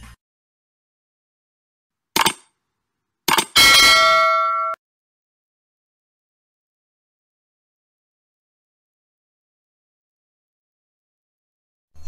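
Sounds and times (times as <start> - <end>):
short clicks: 2.2 - 2.5, 3.3 - 3.6
notification bell ding: 3.6 - 4.8.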